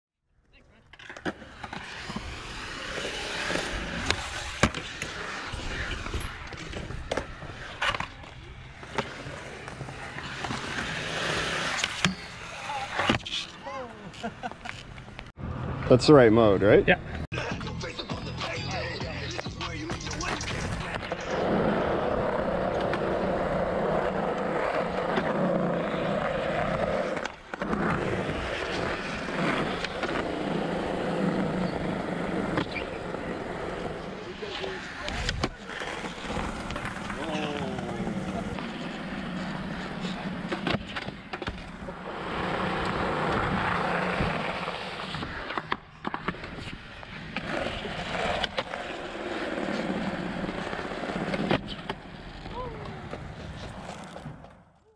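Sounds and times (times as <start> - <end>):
skateboard wheels rolling on concrete: 0.4 - 54.9.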